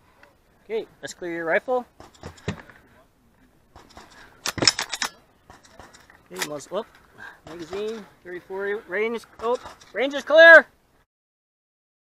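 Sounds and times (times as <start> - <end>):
gun action metallic clicks: 3.8 - 6.6.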